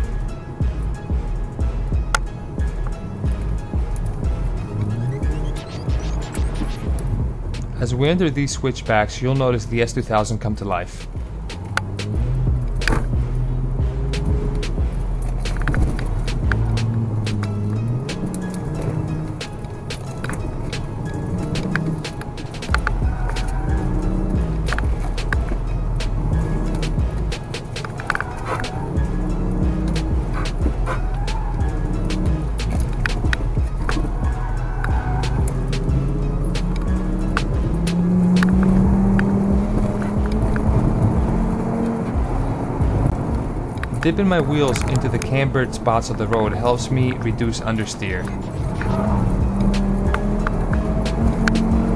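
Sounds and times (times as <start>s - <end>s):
background music: 0.0s - 51.9s
car engine in cabin: 0.0s - 51.9s
road rumble: 0.0s - 51.9s.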